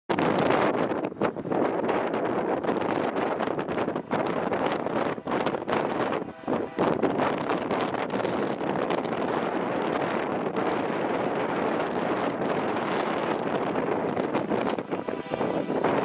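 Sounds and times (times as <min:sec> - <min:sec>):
wind buffeting microphone: 0:00.1 - 0:16.0.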